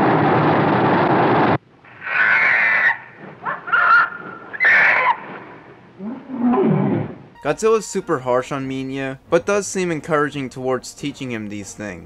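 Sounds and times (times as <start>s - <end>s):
creature squealing cries: 1.9s - 5.3s.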